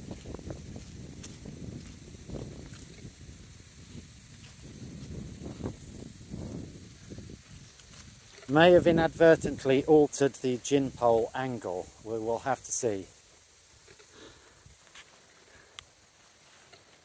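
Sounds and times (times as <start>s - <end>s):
wind buffeting microphone: 0.0s - 10.1s.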